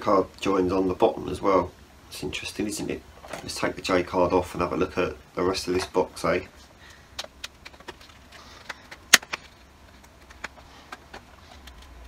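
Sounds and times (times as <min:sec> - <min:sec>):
cardboard rustling: 0:05.8 - 0:12.0.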